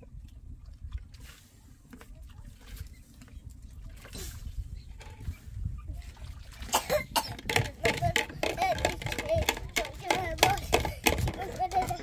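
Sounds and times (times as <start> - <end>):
person coughing: 6.7 - 7.5.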